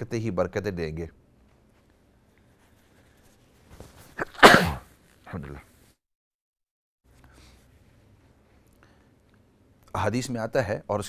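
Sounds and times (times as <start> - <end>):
man sneezing: 4.2 - 4.9.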